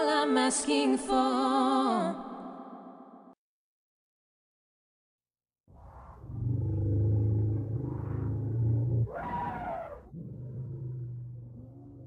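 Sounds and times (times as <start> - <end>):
deep roaring voice: 6.2 - 12.0.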